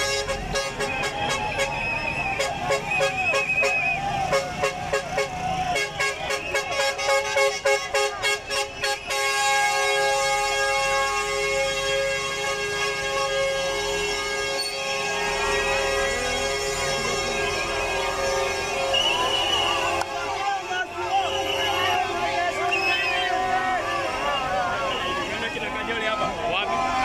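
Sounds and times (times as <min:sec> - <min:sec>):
loud air horn: 0:00.0 - 0:25.7
crowd shouting and chanting: 0:00.0 - 0:27.0
shrill wavering whistle: 0:00.8 - 0:04.0, 0:18.8 - 0:20.0, 0:21.2 - 0:21.9, 0:22.7 - 0:23.4.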